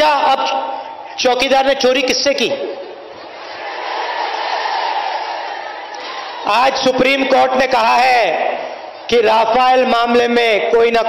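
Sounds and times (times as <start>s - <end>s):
crowd shouting and cheering: 2.6s - 9.4s.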